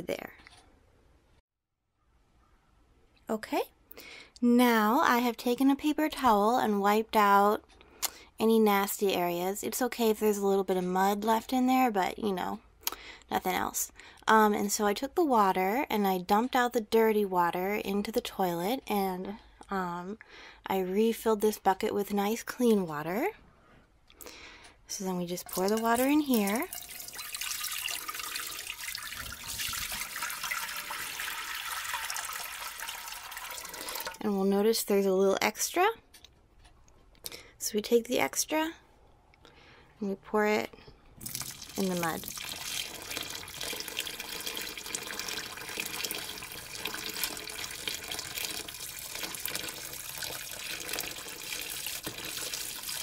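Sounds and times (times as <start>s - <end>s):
water pouring and splashing: 25.3s - 34.2s, 41.2s - 53.0s.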